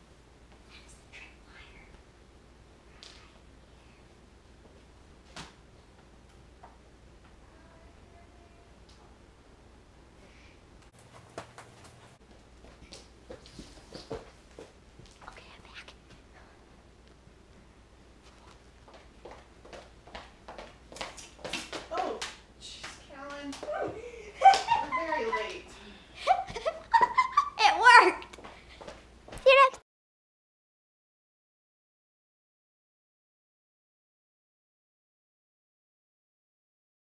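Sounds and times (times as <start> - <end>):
footsteps on hardwood floor: 11.0 - 15.2, 18.2 - 22.2, 28.2 - 29.7
voices with loud exclamation: 23.5 - 25.7, 27.5 - 28.3.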